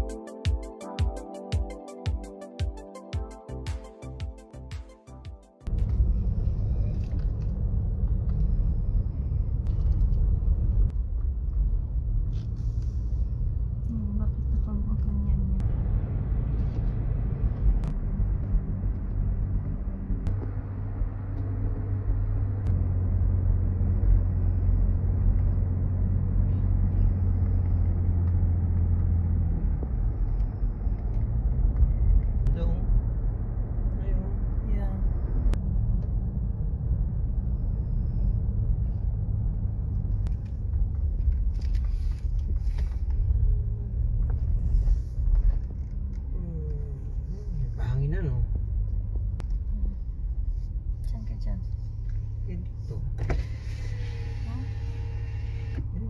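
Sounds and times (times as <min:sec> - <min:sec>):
car engine and tyre rumble: 0:05.6 - 0:56.0.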